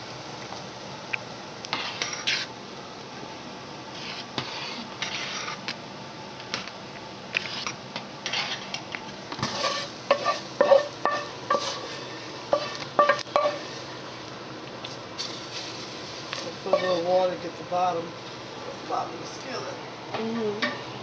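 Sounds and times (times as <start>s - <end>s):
ladle stirring in a metal pot: 1.7s - 2.5s, 3.9s - 5.7s, 7.3s - 13.8s, 15.2s - 17.3s.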